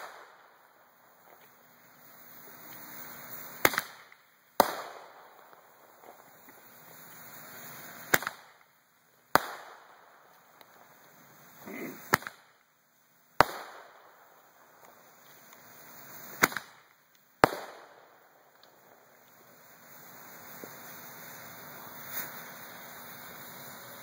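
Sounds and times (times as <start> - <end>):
firework hiss: 0.0 - 24.0
roman candle pops: 3.5 - 6.6, 8.0 - 8.7, 11.6 - 12.5, 14.8 - 17.9.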